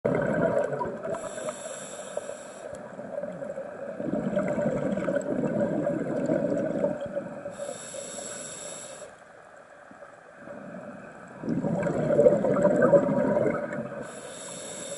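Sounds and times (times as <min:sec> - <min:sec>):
bubbling exhaled air: 0:00.0 - 0:02.0, 0:03.0 - 0:07.8, 0:10.4 - 0:14.9
regulator inhale hiss: 0:01.1 - 0:02.9, 0:07.5 - 0:09.3, 0:14.0 - 0:14.9.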